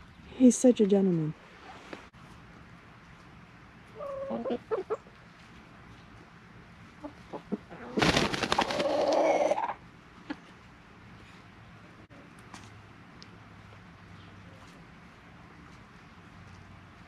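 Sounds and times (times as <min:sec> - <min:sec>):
rooster clucking: 0:03.9 - 0:05.1, 0:07.0 - 0:09.8.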